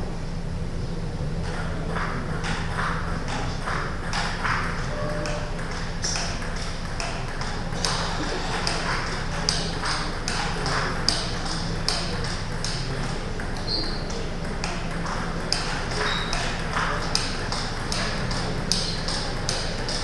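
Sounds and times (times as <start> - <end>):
table tennis ball clicks: 5.2 - 20.0.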